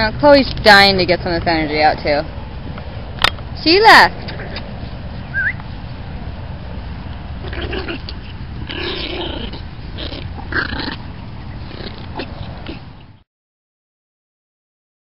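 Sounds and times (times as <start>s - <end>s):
wind rumbling on microphone: 0.0s - 13.2s
dogs growling and snarling: 4.2s - 5.1s, 7.3s - 13.2s.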